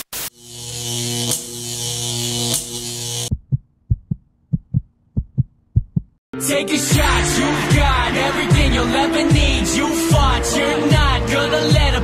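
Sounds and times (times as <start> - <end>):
short low thumps: 3.3 - 6.2.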